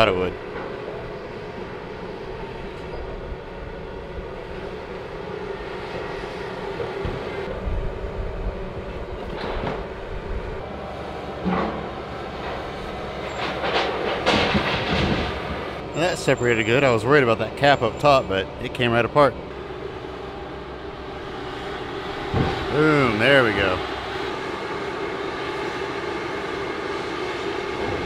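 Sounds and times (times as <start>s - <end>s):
excavator diesel engine running: 0.0s - 28.0s
hydraulic whine: 0.0s - 28.0s.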